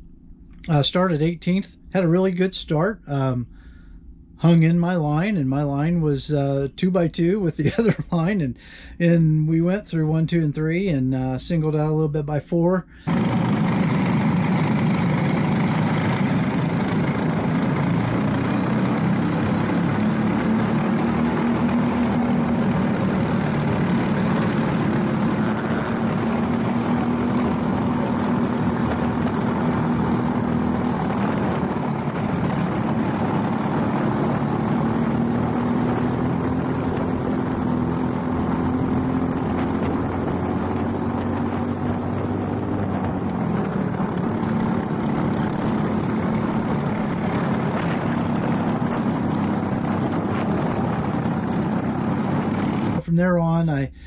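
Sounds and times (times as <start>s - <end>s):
other kart engines: 13.0s - 53.0s
kart engine running hard: 13.1s - 53.0s.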